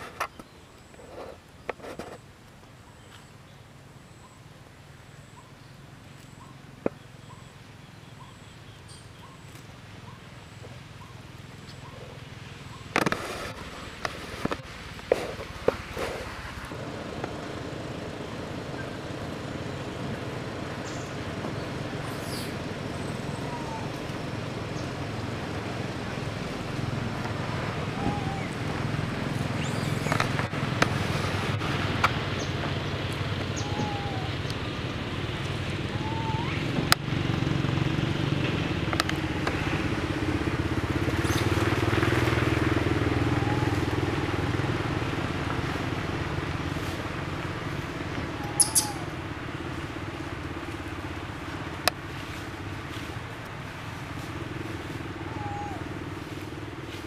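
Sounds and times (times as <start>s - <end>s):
low engine hum: 0.0s - 57.0s
scattered clicks: 38.9s - 39.6s.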